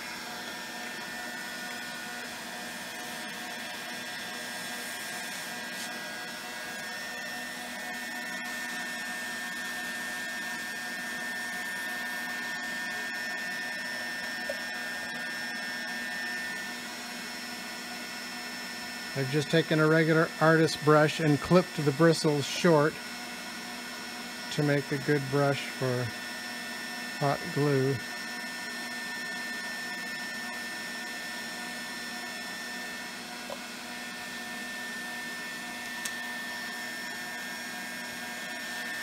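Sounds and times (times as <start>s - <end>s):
vacuum source whirring hiss: 0.0s - 23.1s, 24.6s - 39.0s.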